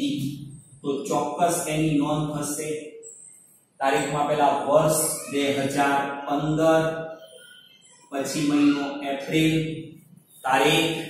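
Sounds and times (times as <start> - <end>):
man speaking slowly: 0.0 - 2.9, 3.8 - 7.0, 8.1 - 11.0.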